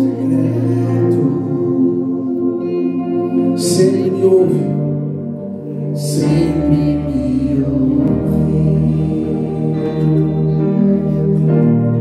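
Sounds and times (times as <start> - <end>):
soft keyboard pad chords: 0.0 - 12.0.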